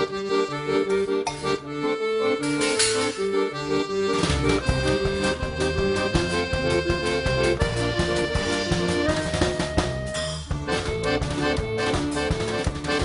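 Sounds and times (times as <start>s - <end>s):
accordion melody: 0.0s - 13.0s
double bass: 0.0s - 13.0s
low bass line: 0.0s - 13.0s
regular beat: 0.0s - 13.0s.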